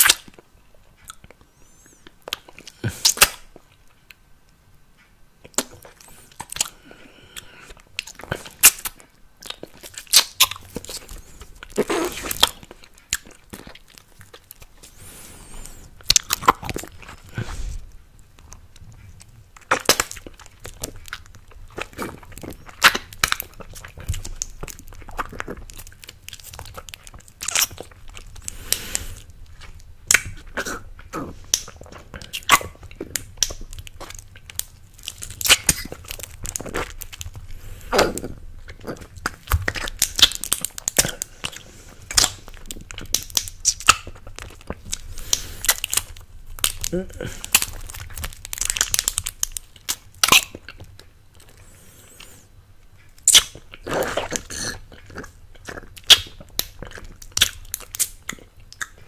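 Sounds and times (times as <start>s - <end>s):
wet mouth sucking and licking candy: 0.0s - 0.4s, 1.0s - 3.9s, 5.4s - 59.0s.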